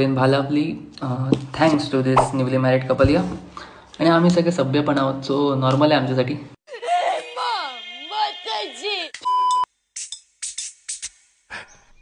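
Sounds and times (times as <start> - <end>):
woman wailing: 6.7 - 9.2
loud steady beep: 7.2 - 9.7.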